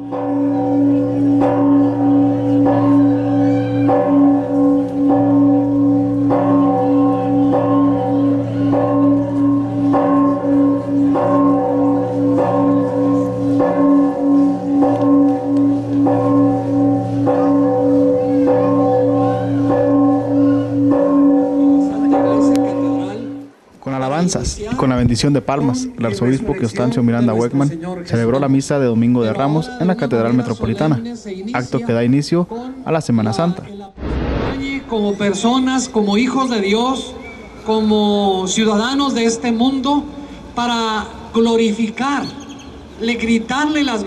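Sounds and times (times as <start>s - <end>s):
church bells ringing: 0.0s - 23.5s.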